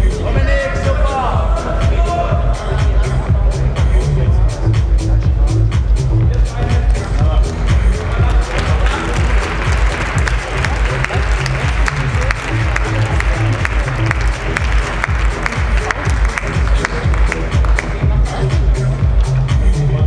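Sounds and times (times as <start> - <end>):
electronic dance music: 0.0 - 20.0
audience applause and cheering: 8.2 - 18.3.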